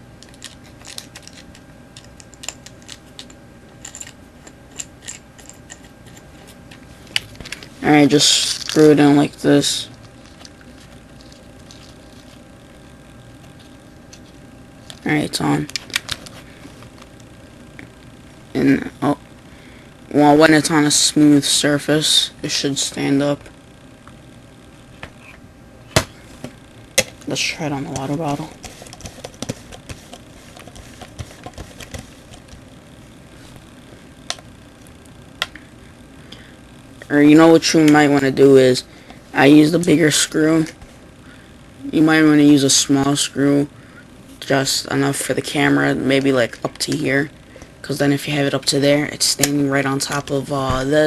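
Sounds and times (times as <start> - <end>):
low hum and hiss: 0.0 - 51.0.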